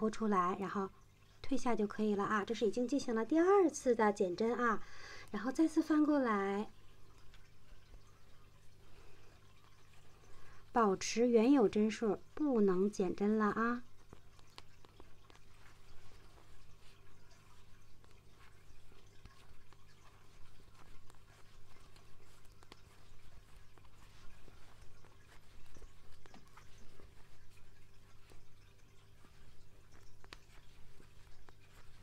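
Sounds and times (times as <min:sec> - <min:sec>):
low electrical hum: 0:00.0 - 0:32.0.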